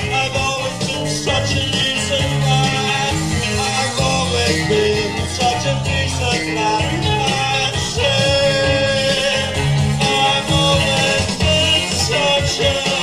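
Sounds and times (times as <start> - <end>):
bass guitar line: 0.0 - 13.0
live rock band playing: 0.0 - 13.0.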